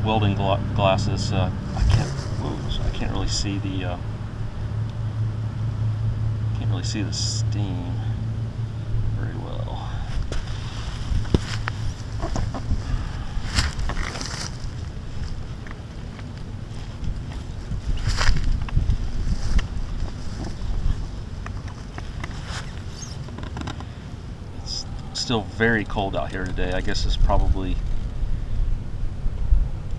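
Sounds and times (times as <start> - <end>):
wind buffeting microphone: 8.2 - 23.3.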